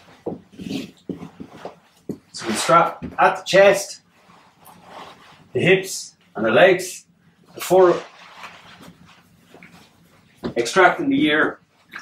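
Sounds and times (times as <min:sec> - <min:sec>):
vinyl splint and straps rustling: 0:07.6 - 0:10.2.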